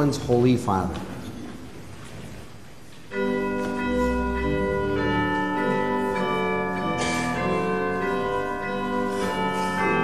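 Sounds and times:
instrumental hymn chords: 2.9 - 10.0.

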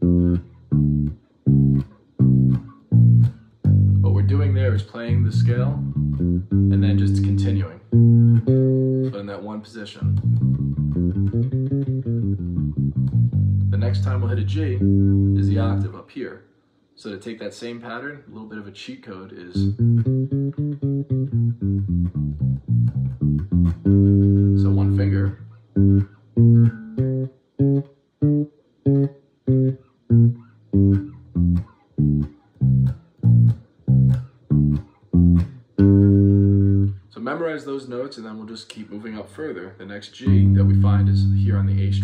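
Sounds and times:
electric bass guitar notes: 0.0 - 9.2, 10.0 - 15.9, 19.6 - 37.1, 40.2 - 42.0.

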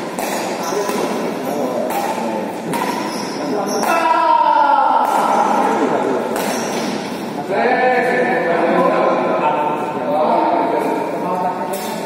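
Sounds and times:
racket hitting shuttlecock: 0.0 - 7.2
voices talking and calling out: 0.2 - 12.0.

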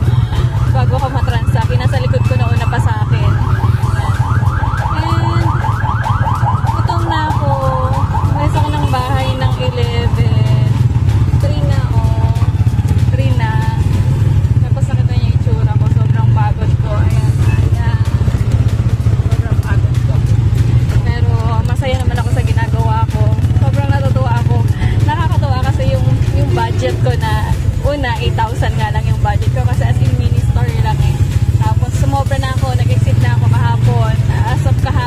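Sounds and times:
vehicle engine droning: 0.0 - 35.0.

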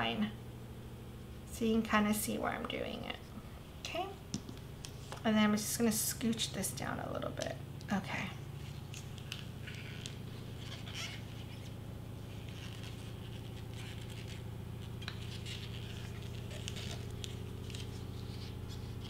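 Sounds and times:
steady low hum: 0.0 - 19.0
paper wrapper rustling: 8.6 - 19.0.

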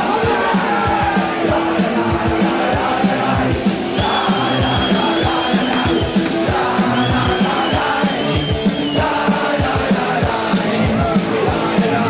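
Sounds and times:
crowd yelling: 0.0 - 12.0
fast kick drum beat: 0.0 - 12.0
live punk rock band: 0.0 - 12.0
shouted vocals: 0.0 - 12.0
high wavering whistles: 3.9 - 9.2.

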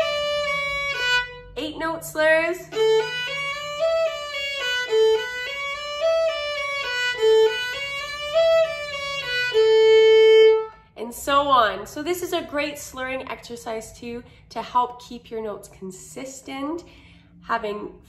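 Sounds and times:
violin playing a scale: 0.0 - 10.9.

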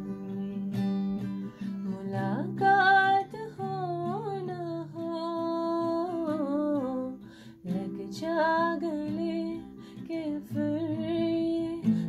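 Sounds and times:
acoustic guitar: 0.0 - 12.0
woman singing slow melody: 0.0 - 12.0.

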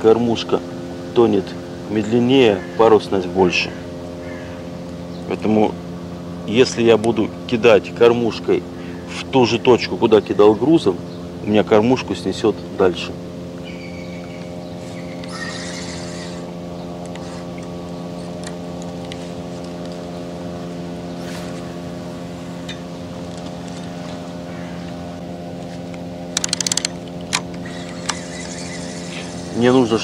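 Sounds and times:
boat motor humming: 0.0 - 30.0.

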